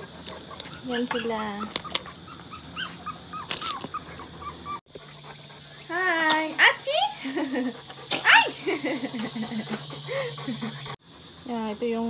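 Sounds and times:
puppies whimpering: 0.0s - 6.0s.

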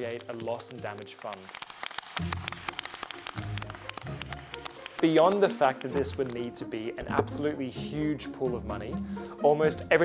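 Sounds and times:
hand-clapping: 0.0s - 6.6s.

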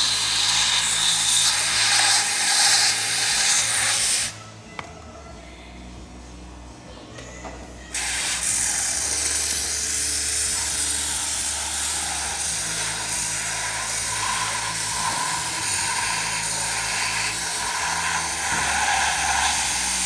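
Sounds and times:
spray wand hissing: 0.0s - 4.3s, 8.0s - 20.0s.

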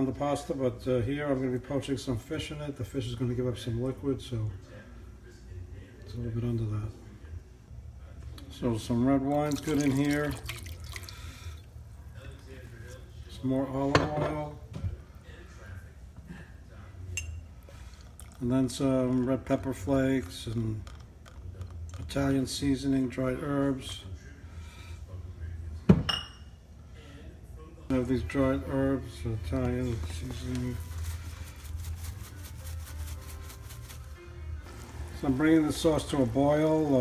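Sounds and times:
glass bottle clink: 17.2s - 17.5s, 25.9s - 26.5s
herbs rattling in spice jar: 30.2s - 34.2s.

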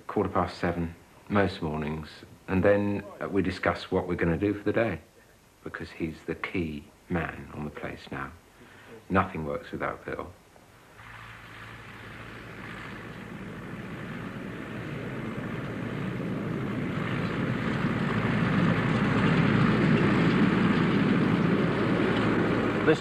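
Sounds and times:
tractor diesel engine running: 11.0s - 23.0s.

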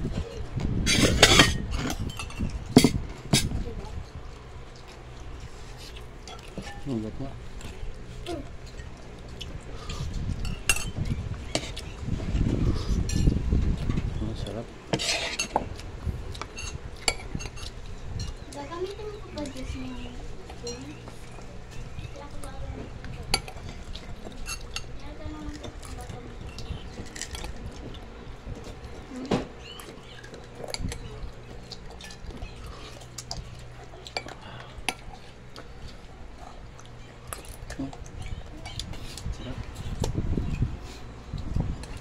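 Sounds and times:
steady low hum: 0.0s - 42.0s
spoon and plates clinking: 0.2s - 3.5s, 6.2s - 7.0s, 10.4s - 11.9s, 14.4s - 15.6s, 16.4s - 18.5s, 23.2s - 27.6s.

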